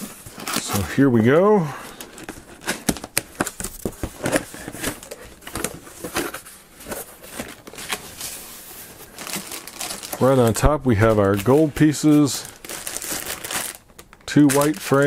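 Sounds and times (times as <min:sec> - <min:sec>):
plastic bags crinkling: 0:07.0 - 0:15.0.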